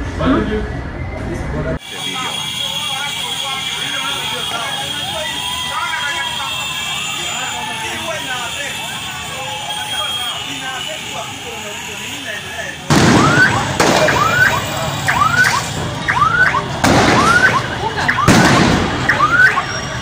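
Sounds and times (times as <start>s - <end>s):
motorcycle traffic: 0.0s - 20.0s
street voices: 0.0s - 20.0s
electronic alarm whooping: 1.8s - 12.0s, 13.2s - 20.0s.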